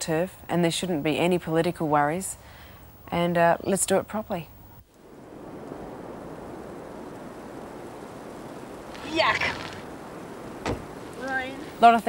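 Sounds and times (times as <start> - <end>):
rain: 0.0 - 12.0
wind: 0.0 - 12.0.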